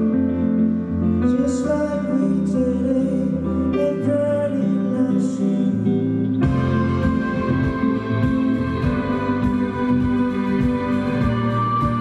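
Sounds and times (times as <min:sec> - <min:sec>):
electric guitar: 0:00.0 - 0:12.0
live pop-rock band: 0:00.0 - 0:12.0
man singing: 0:01.2 - 0:12.0
drum hits: 0:06.4 - 0:12.0.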